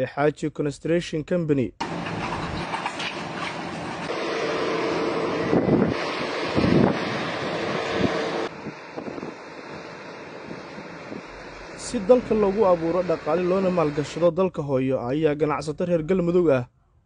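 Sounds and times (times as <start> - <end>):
wind on microphone: 5.1 - 11.8.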